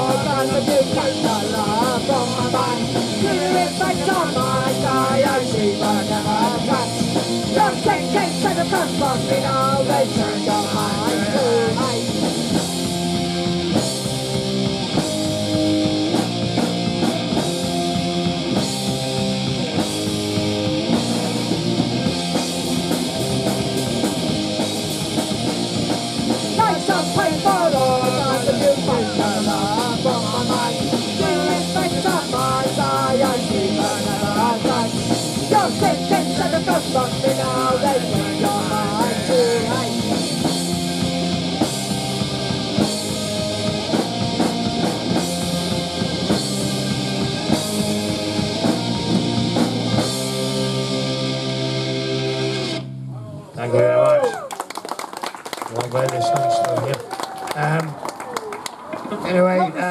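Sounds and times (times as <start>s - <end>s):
punk rock band playing live: 0.0s - 53.1s
person speaking over pa: 59.2s - 59.9s.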